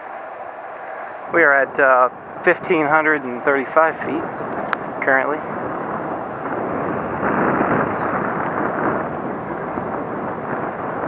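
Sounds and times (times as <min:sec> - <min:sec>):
wind rushing over microphone: 0:00.0 - 0:11.0
tyre noise on pavement: 0:04.3 - 0:11.0.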